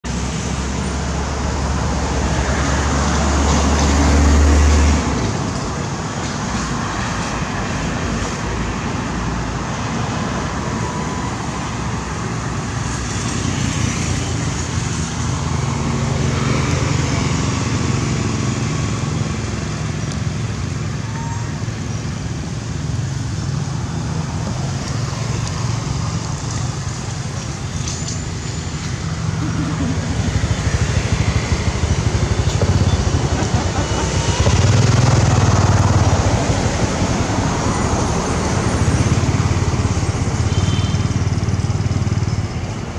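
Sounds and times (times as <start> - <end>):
road traffic noise: 0.0 - 42.9.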